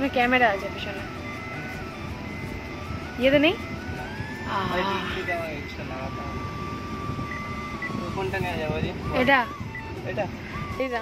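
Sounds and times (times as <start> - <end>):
parking sensor continuous beep: 0.0 - 11.0.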